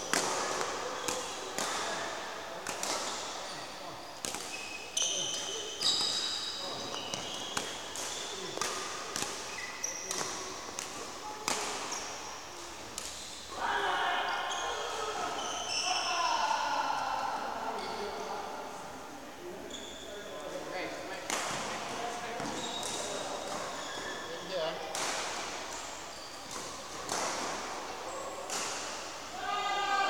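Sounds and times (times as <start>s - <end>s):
racket hitting shuttlecock: 0.0s - 3.2s, 5.3s - 12.1s, 24.9s - 25.6s, 26.5s - 27.8s
shoes squeaking on court: 4.4s - 11.0s, 14.5s - 16.1s, 19.7s - 20.1s, 22.2s - 24.6s, 25.7s - 27.3s.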